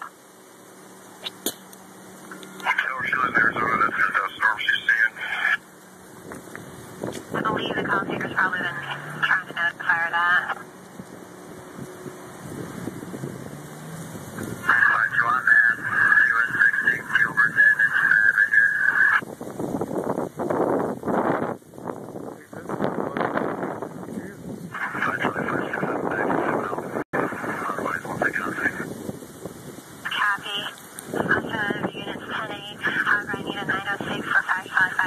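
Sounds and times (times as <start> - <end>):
muffled police scanner radio: 2.5 - 5.6, 7.3 - 10.6, 14.6 - 19.2, 24.1 - 28.9, 30.1 - 35.0
wind buffeting microphone: 2.6 - 35.0.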